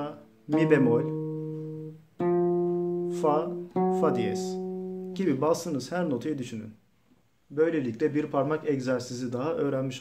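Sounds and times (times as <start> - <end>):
guitar notes plucked: 0.2 - 5.5.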